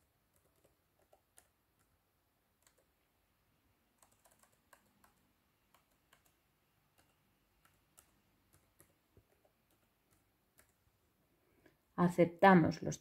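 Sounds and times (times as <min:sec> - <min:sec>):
faint keyboard keystrokes: 0:00.0 - 0:02.0, 0:02.6 - 0:03.0, 0:04.0 - 0:10.8.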